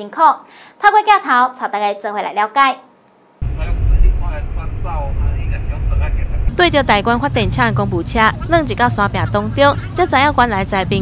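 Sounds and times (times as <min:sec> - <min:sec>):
engine and road noise rumble: 0:03.4 - 0:11.0
muffled voices talking: 0:03.4 - 0:11.0.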